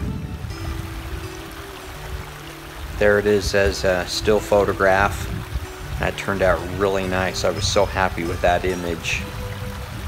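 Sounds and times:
rushing creek water: 0.0s - 10.0s
soft background music: 0.0s - 10.0s.

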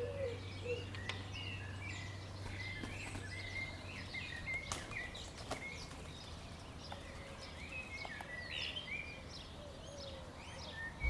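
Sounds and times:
songbirds chirping and warbling: 0.0s - 11.0s.

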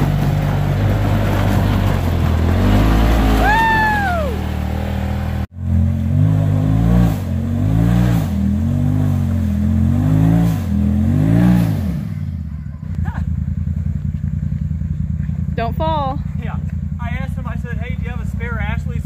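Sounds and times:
off-road vehicle engine revving: 0.0s - 19.0s.

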